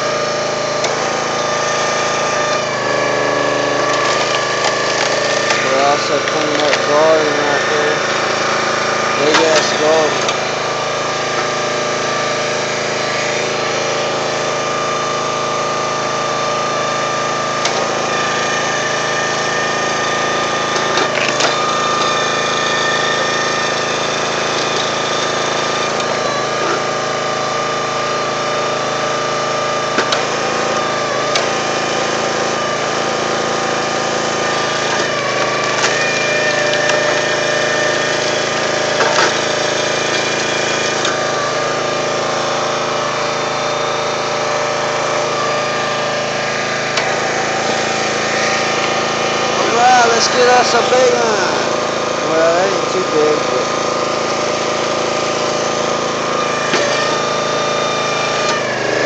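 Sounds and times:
log splitter engine running: 0.0 - 59.0
sharp crack of wood splitting: 3.8 - 6.9, 34.8 - 37.3.

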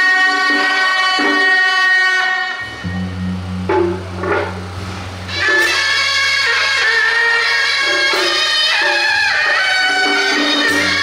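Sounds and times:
sustained melody line: 2.4 - 8.9
low steady drone: 2.6 - 8.1.

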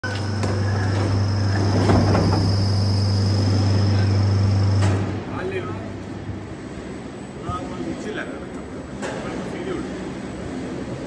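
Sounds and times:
electric hoist motor humming: 0.0 - 6.2.

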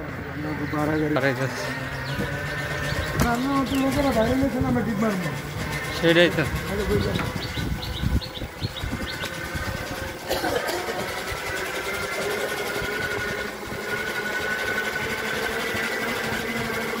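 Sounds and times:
motor running steadily: 0.0 - 17.0.

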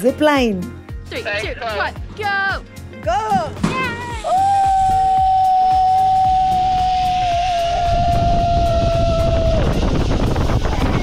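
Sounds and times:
wind rushing over microphone: 4.5 - 11.0.

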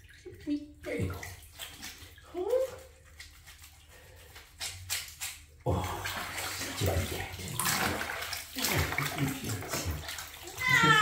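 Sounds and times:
bathwater splashing and sloshing: 0.0 - 11.0.

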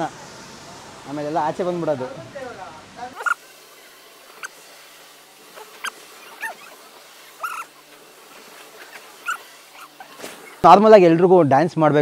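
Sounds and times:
small bird chirping: 3.1 - 3.4, 5.6 - 7.7, 8.8 - 10.6.

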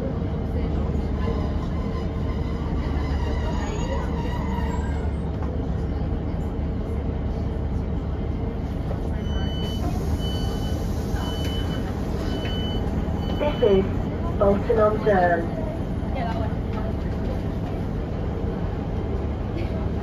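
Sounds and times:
diesel engine idling hum: 5.0 - 20.0.

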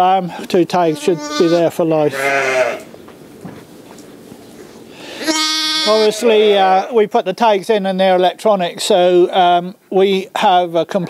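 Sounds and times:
sheep bleating: 0.7 - 2.9, 5.2 - 6.9.

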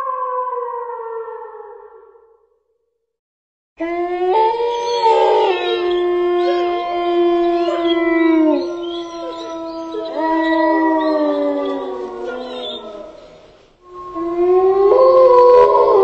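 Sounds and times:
dogs howling together: 3.8 - 16.0.

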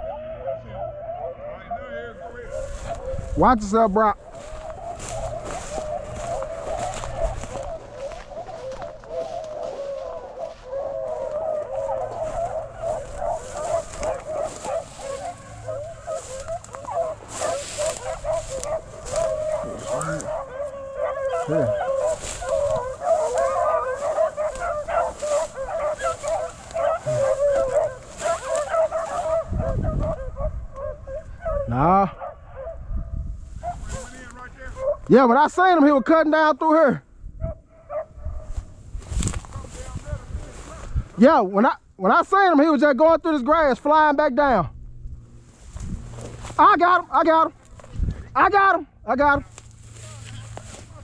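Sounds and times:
dogs baying in chorus: 0.0 - 35.9, 37.3 - 41.2
dry grass rustling: 2.2 - 31.9, 33.2 - 36.1, 37.9 - 44.2, 44.8 - 51.0.

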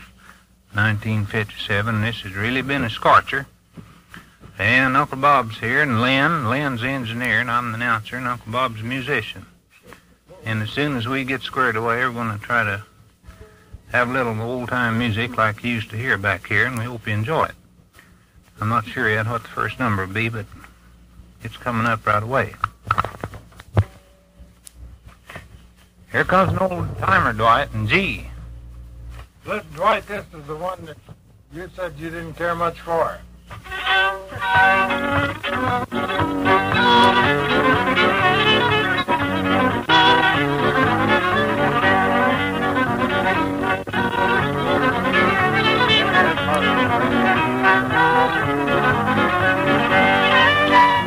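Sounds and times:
low steady tape hum: 0.0 - 51.0
fiddle tune: 4.6 - 7.4, 33.0 - 51.0.

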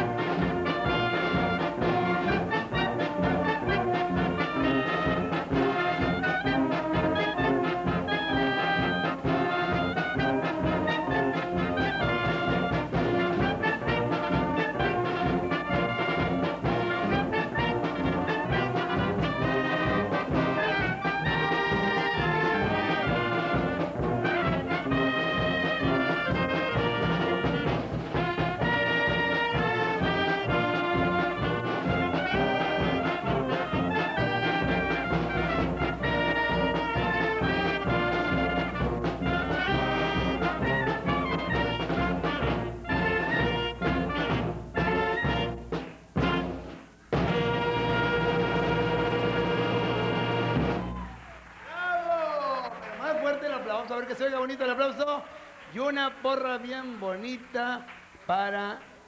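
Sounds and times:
brass band playing: 0.0 - 51.6.

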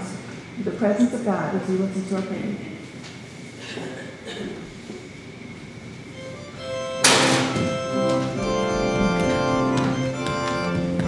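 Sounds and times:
organ music: 6.1 - 11.0
loud sharp thunk: 7.0 - 7.8.

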